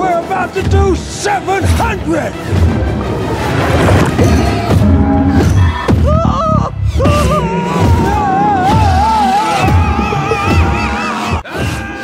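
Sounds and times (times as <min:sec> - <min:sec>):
film music: 0:00.0 - 0:12.0
man's distorted wailing cry: 0:06.0 - 0:12.0.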